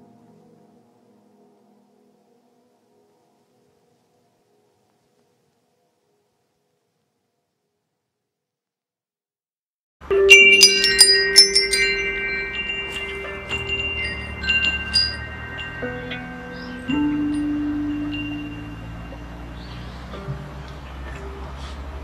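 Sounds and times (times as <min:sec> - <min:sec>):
metal wind chime ringing: 0:10.3 - 0:20.1.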